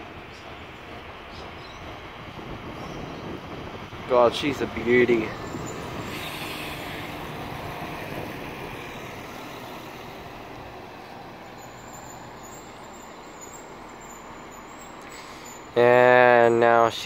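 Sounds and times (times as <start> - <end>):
railcar rolling: 0.0 - 17.0.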